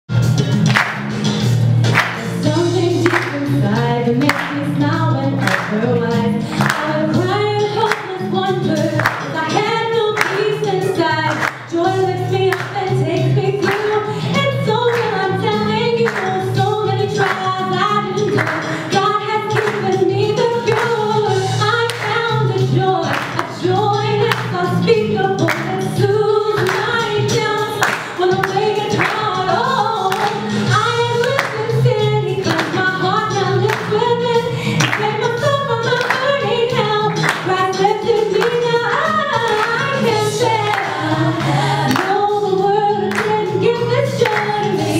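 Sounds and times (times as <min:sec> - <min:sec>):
music with bass and beat: 0:00.1 - 0:44.9
woman singing gospel: 0:02.4 - 0:44.9.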